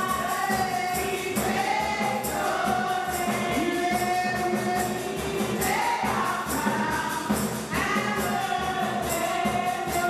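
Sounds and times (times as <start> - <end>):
instrumental accompaniment with beat: 0.0 - 10.0
women singing gospel: 0.0 - 10.0.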